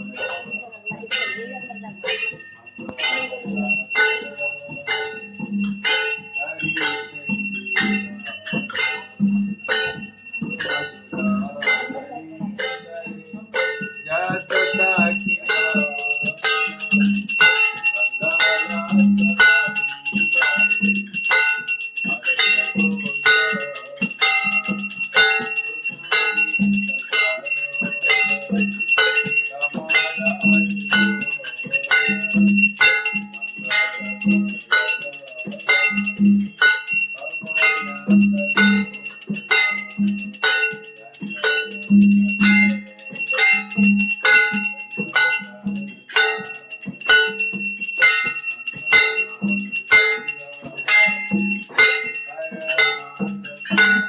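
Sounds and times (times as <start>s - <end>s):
bell ringing: 0.0s - 54.0s
drum beaten in steady rhythm: 0.0s - 54.0s
hand cymbals clashing: 0.0s - 54.0s.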